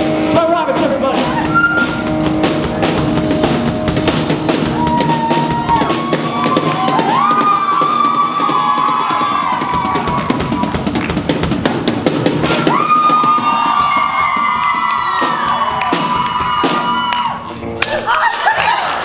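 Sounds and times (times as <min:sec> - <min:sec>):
drum kit with cymbal crashes: 0:00.0 - 0:17.1
electric guitars bending notes: 0:00.0 - 0:18.1.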